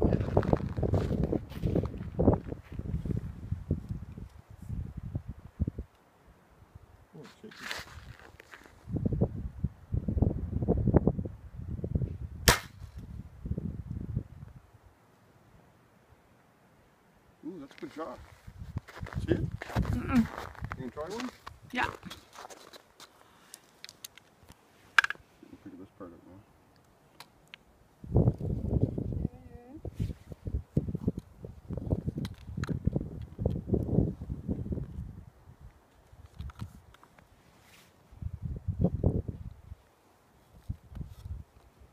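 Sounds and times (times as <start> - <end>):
crossbow string snap: 12.4 - 13.1
crossbow clicks and knocks: 23.5 - 25.2.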